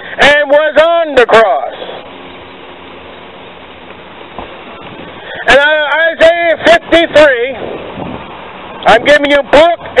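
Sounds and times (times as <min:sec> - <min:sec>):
outdoor street noise: 0:00.0 - 0:10.0.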